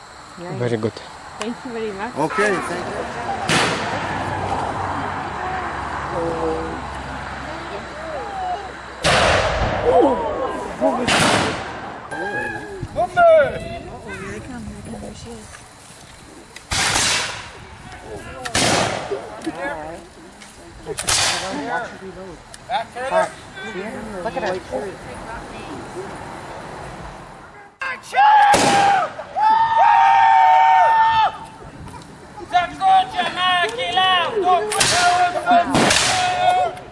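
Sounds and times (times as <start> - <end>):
people's voices: 0.0 - 36.9
people yelling war cries: 2.2 - 9.0, 9.7 - 11.2, 12.0 - 14.4, 27.5 - 31.6, 32.3 - 36.9
loud gunshot: 3.5 - 3.9, 9.0 - 10.0, 11.0 - 11.9, 16.7 - 17.5, 18.5 - 19.1, 21.1 - 21.4, 28.5 - 29.0, 34.8 - 36.4
musket shot: 3.5 - 3.9, 9.0 - 9.9, 11.0 - 11.9, 16.7 - 17.5, 18.5 - 19.1, 21.0 - 21.4, 28.5 - 28.9, 35.7 - 36.2.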